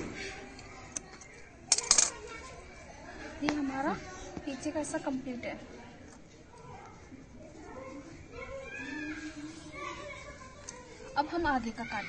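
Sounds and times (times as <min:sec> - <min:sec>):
metal scissors clattering on stone: 0:01.7 - 0:02.2.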